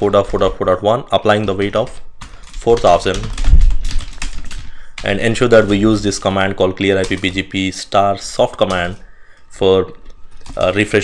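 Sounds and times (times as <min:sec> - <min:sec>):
typing on computer keyboard: 0:01.2 - 0:06.0, 0:06.9 - 0:07.5, 0:08.6 - 0:09.0, 0:10.0 - 0:10.9.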